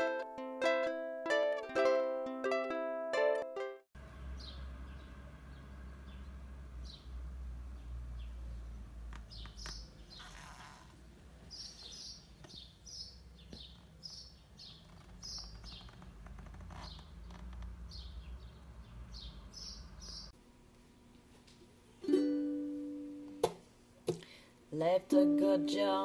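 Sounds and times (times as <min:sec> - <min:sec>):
small birds chirping: 0:04.0 - 0:20.4.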